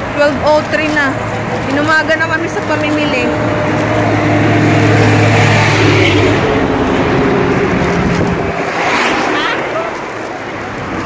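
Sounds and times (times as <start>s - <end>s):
rush of traffic: 0.0s - 11.0s
vehicle engine hum: 0.0s - 11.0s.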